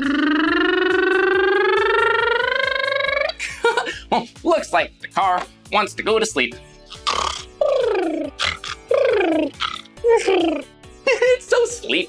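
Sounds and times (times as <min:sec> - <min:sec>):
man imitating truck engine: 0:00.0 - 0:03.4, 0:07.0 - 0:10.7.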